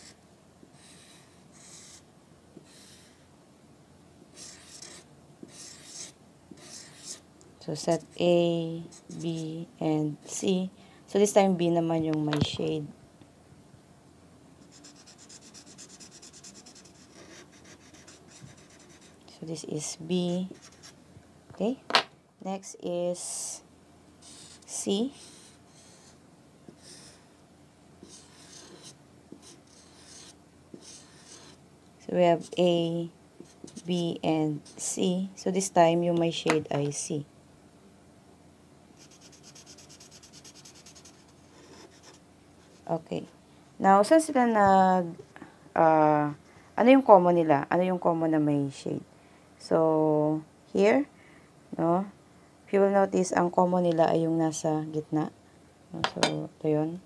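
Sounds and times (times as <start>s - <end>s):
marker scribbling on paper: 0.8s - 2.0s, 4.4s - 7.2s, 8.9s - 9.6s, 14.6s - 19.2s, 28.0s - 31.6s, 39.0s - 42.9s.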